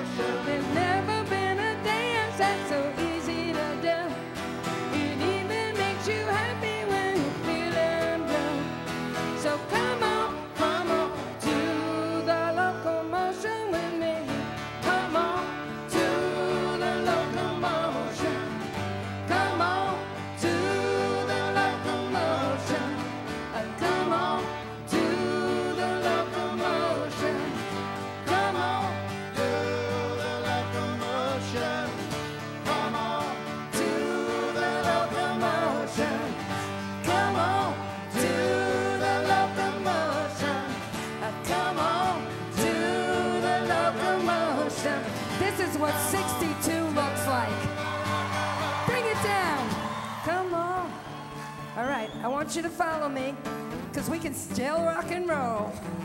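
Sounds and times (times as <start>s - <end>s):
person singing: 0.0s - 48.0s
strummed acoustic guitar: 0.0s - 56.0s.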